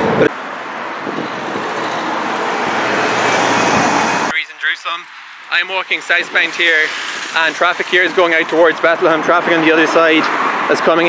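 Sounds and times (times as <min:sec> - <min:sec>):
passing vehicle: 0:00.0 - 0:11.0.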